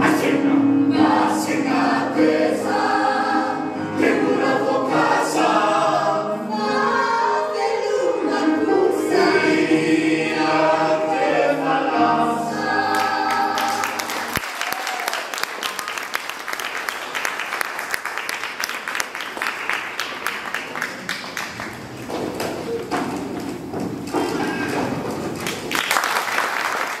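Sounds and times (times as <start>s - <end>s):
mixed choir singing: 0.0s - 14.4s
audience applauding: 12.9s - 22.9s, 24.1s - 27.0s.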